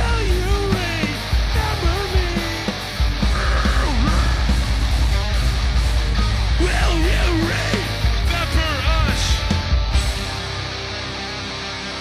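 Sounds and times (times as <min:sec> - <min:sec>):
live rock band playing: 0:00.0 - 0:12.0
sliding pitched guitar part: 0:00.0 - 0:12.0.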